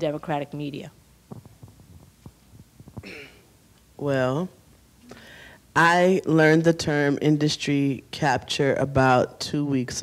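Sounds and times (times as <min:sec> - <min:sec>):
microphone handling thumps: 0:01.2 - 0:03.4.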